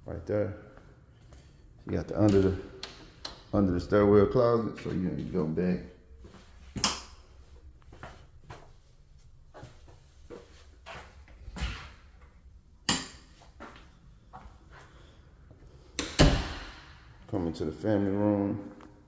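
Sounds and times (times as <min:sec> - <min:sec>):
footsteps on hard floor: 0:07.8 - 0:11.9.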